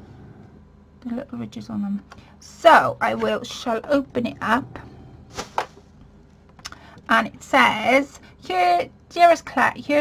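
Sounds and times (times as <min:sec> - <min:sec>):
card stock swishing: 0:05.3 - 0:05.8.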